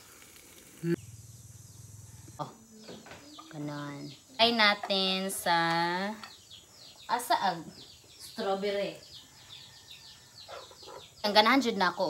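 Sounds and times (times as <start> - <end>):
bird chirping: 0.9 - 12.0.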